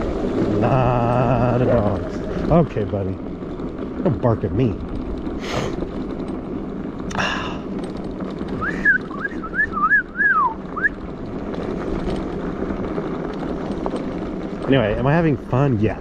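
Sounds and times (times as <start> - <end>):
e-bike rumbling on dirt trail: 0.0 - 16.0
person whistling: 8.6 - 11.0.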